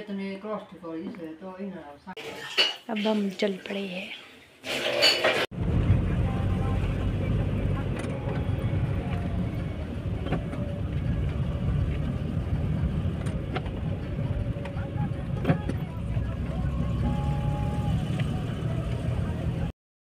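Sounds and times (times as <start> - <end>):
car driving rumble inside cabin: 5.6 - 19.7
sharp clicks and knocks: 13.0 - 14.8.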